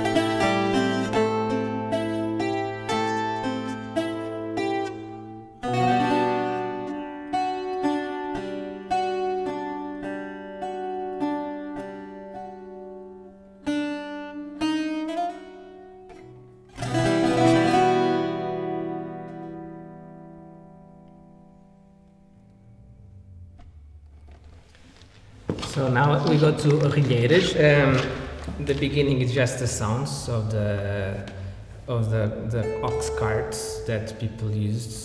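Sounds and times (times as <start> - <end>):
strummed chord: 0.0 - 24.8, 32.1 - 34.6
plucked string instrument: 0.0 - 35.0.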